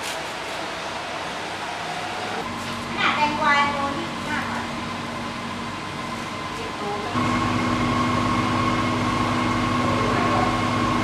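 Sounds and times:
motor humming: 0:07.0 - 0:11.0.

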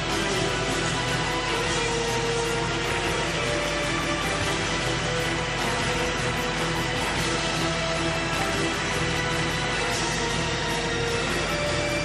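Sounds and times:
music with long held notes: 0:00.0 - 0:12.0.

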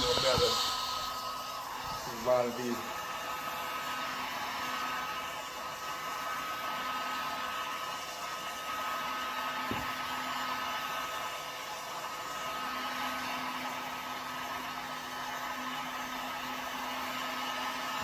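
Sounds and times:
heat gun blowing: 0:00.0 - 0:18.0.

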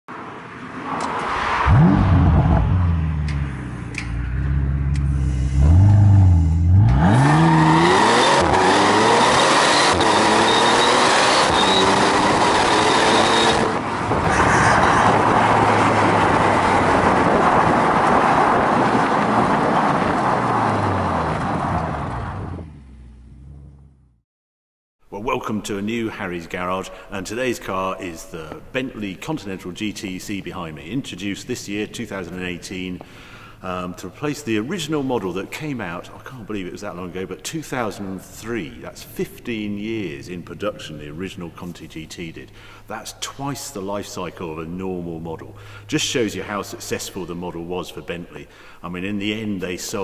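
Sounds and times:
road and wind noise: 0:00.1 - 0:24.2, 0:36.6 - 0:50.0
car engine revving: 0:01.4 - 0:24.0.

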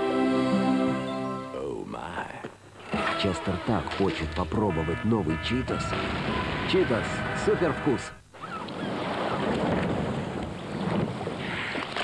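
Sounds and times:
wind: 0:08.0 - 0:12.0.

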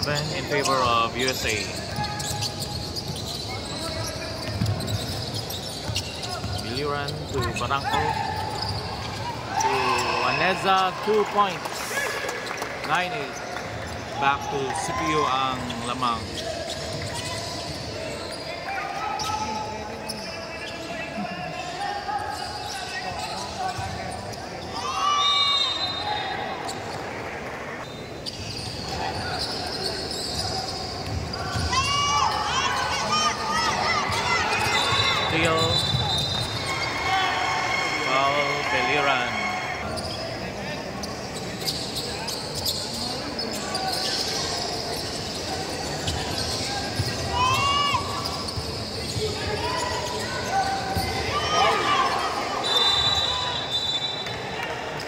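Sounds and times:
sneakers squeaking: 0:00.0 - 0:11.6, 0:12.3 - 0:55.0
crowd chatter echoing: 0:00.0 - 0:55.0
referee's whistle: 0:24.7 - 0:26.5, 0:34.1 - 0:36.9, 0:46.0 - 0:54.5.

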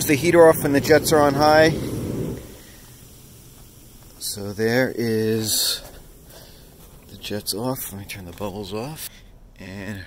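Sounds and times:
hot tub jet pump and churning water: 0:00.0 - 0:08.0
faint steady background: 0:00.0 - 0:10.0.

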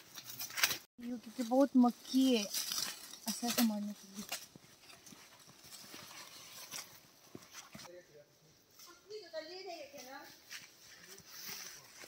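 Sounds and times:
footsteps crunching through dry leaves: 0:00.0 - 0:07.9.

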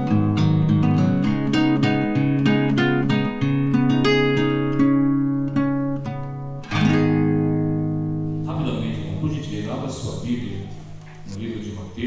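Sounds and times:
guitar chord ringing: 0:00.0 - 0:11.3
person speaking: 0:08.4 - 0:12.0.

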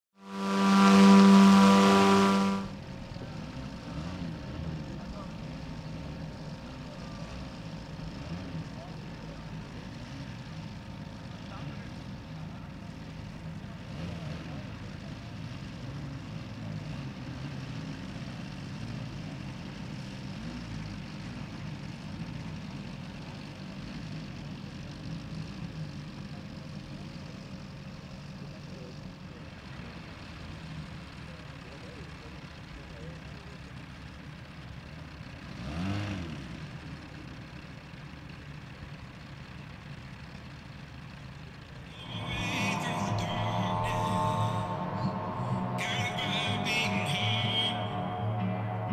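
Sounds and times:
engine passing close by: 0:00.2 - 0:09.0, 0:41.9 - 0:48.9
model plane engines running: 0:00.3 - 0:35.6, 0:36.4 - 0:47.9.

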